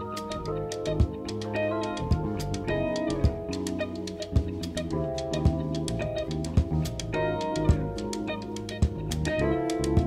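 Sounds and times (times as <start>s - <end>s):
jazz fusion band playing: 0.0s - 10.0s
light cymbal ticks: 0.1s - 10.0s.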